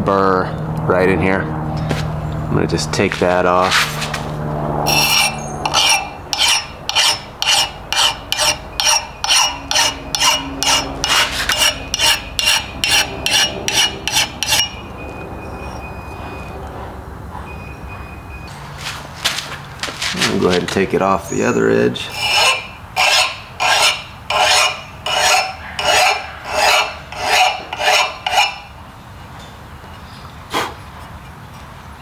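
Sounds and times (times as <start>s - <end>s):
file strokes on axe edge: 4.9s - 14.7s, 22.1s - 28.7s.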